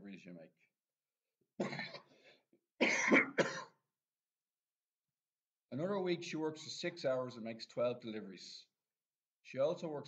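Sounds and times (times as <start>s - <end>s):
man coughing: 1.6s - 3.8s.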